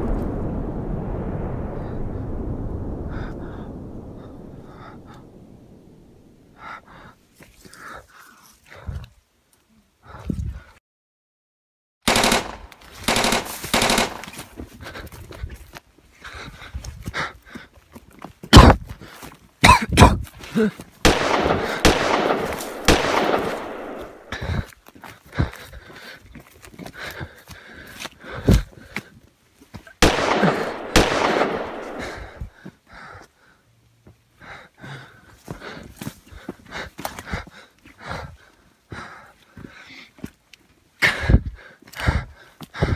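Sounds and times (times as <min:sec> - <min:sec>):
automatic gunfire: 0:12.1 - 0:14.3, 0:21.1 - 0:24.3, 0:30.0 - 0:32.2
weak gunshot cracks: 0:21.0 - 0:24.4, 0:30.0 - 0:32.4
loud gunshot: 0:21.1 - 0:24.4, 0:30.0 - 0:32.4.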